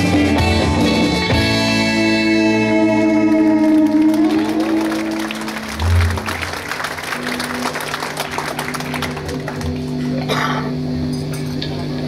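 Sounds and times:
band chord on electric guitars: 0.0 - 11.1
audience applause: 3.1 - 10.3.

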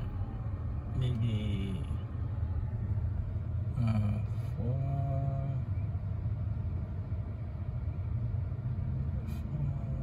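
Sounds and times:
car cabin rumble: 0.0 - 10.0
low traffic drone: 0.0 - 10.0.

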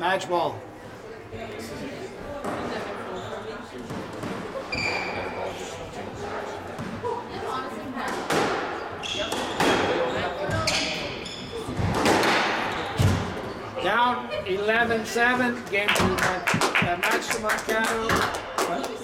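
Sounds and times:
shoes squeaking: 4.2 - 5.5, 8.9 - 13.9, 14.5 - 17.5
squash ball hits: 8.0 - 10.8, 11.7 - 13.4.

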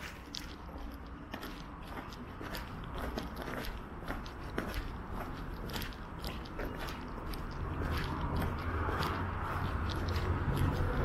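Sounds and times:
footsteps on pavement: 0.0 - 11.0
street traffic rumble: 0.0 - 11.0.

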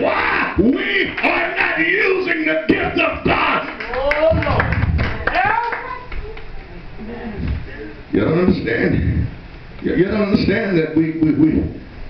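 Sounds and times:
man calling out: 0.0 - 3.8
hand clapping: 3.7 - 6.7.

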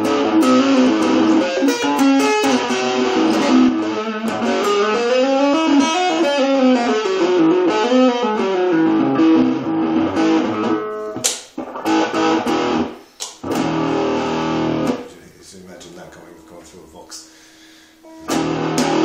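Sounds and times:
clean electric guitar playing: 0.0 - 17.1, 18.0 - 19.0.

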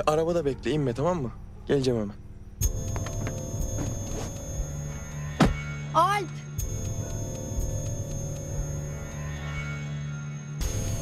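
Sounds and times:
steady held tone: 2.2 - 11.0.

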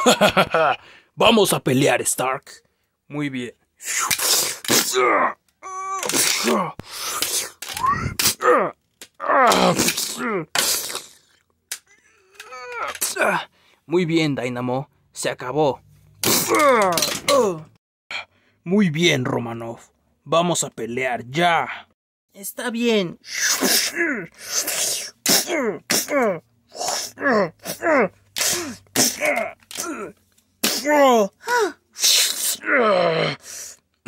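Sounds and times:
person making fight noises: 3.8 - 11.0, 16.2 - 17.8, 23.4 - 33.4.

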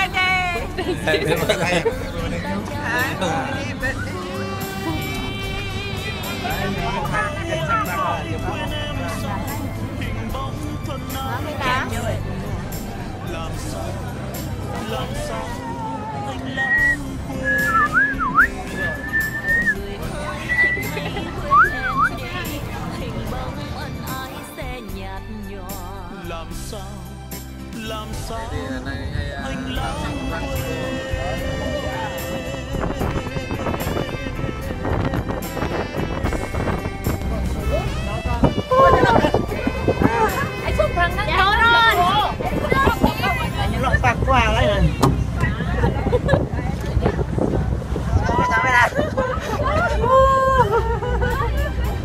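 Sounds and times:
people calling out: 14.7 - 23.0, 37.6 - 46.3, 48.0 - 52.0
girl whistling: 16.7 - 19.8, 21.5 - 22.1
wind buffeting microphone: 28.5 - 52.0.

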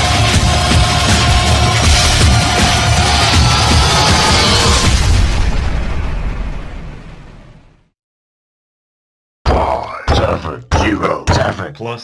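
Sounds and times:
electronic music with booming bass: 0.0 - 5.2.

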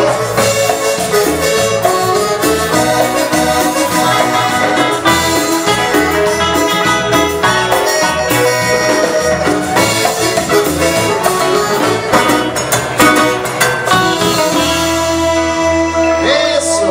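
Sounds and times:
hand percussion: 0.0 - 15.5
congas: 0.0 - 16.9
drum kit: 0.0 - 16.9
keyboard: 0.0 - 16.9
repeating bass line: 0.0 - 16.9
saxophone: 0.0 - 16.9.

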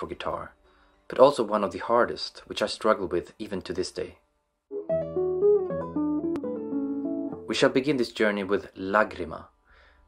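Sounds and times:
classical guitar fingerpicking: 4.7 - 7.6.

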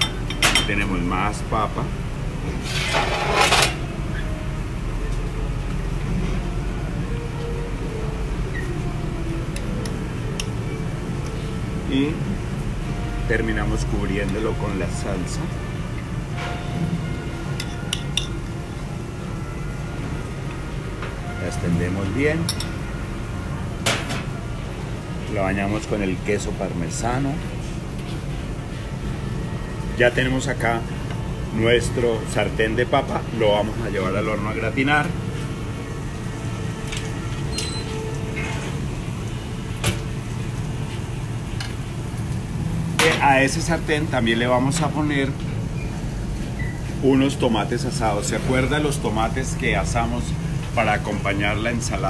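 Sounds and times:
kitchen ventilation hum: 0.0 - 52.0.

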